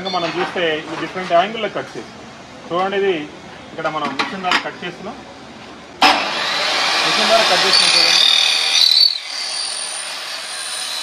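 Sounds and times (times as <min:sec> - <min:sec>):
electric miter saw running: 0:06.0 - 0:11.0.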